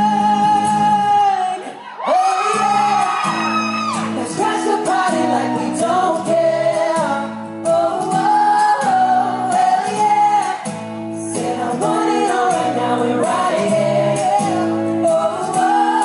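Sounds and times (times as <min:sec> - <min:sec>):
male vocal group singing: 0:00.0 - 0:03.0, 0:04.0 - 0:16.0.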